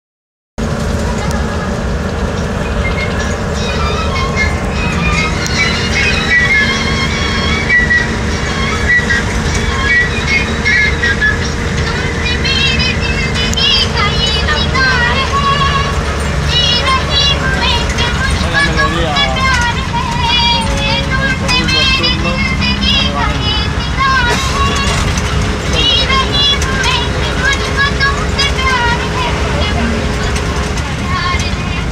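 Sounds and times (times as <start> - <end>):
bus engine rumble: 0.6 - 31.9
music over radio: 2.5 - 31.9
high wavering singing: 2.6 - 31.1.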